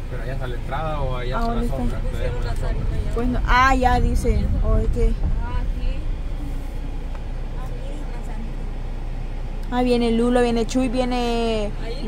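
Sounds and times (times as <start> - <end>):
minibus engine rumble: 0.0 - 12.0
tyres on dirt road: 0.0 - 12.0.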